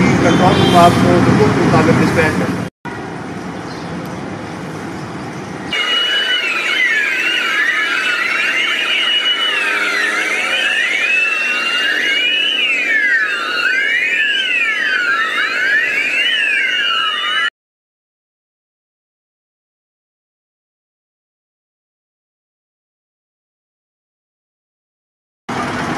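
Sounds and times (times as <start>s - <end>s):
emergency vehicle sirens wailing: 5.7s - 17.6s.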